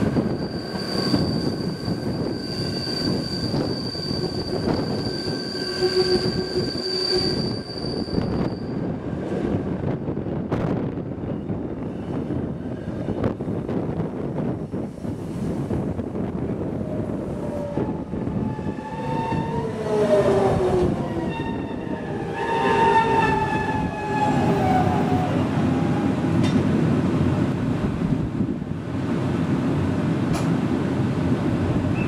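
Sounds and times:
train rumbling: 0.0 - 32.0.

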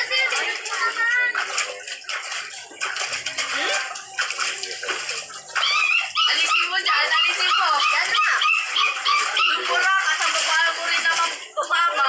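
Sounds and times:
water splashing in pool: 0.0 - 12.0.

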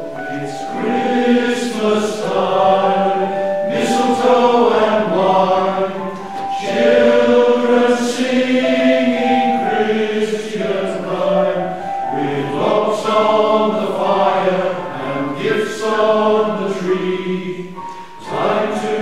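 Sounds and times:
male voice choir singing: 0.3 - 19.0.

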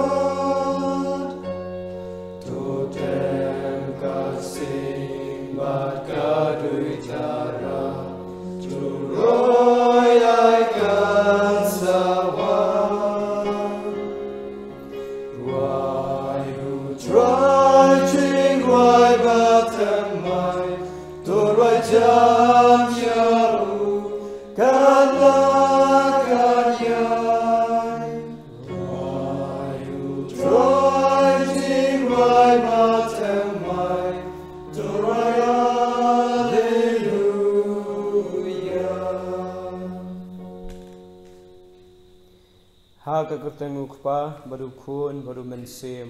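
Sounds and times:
person singing a hymn: 0.0 - 40.8.

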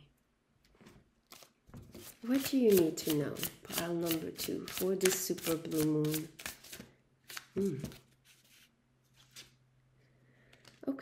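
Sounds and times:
cards rustling: 3.8 - 9.6.

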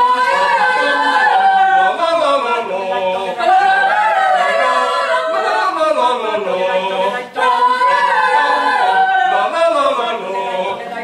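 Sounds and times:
mixed choir singing a cappella: 0.0 - 11.0.

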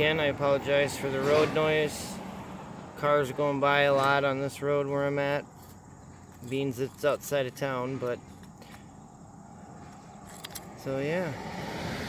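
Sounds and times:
distant road traffic: 0.0 - 12.0
faint insect chirr: 1.7 - 12.0.

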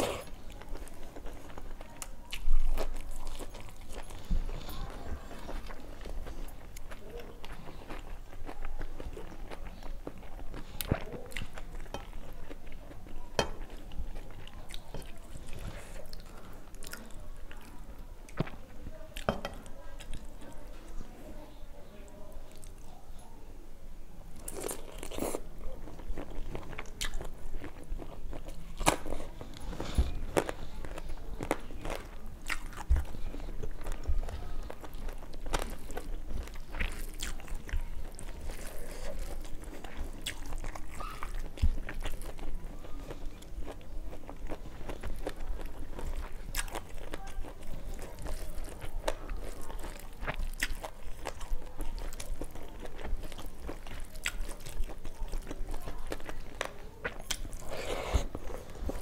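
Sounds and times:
person chewing food: 0.0 - 20.6, 24.4 - 59.0.

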